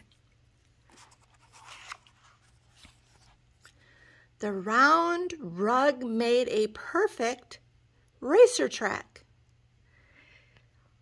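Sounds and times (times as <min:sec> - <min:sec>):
book page turning: 0:00.8 - 0:03.8.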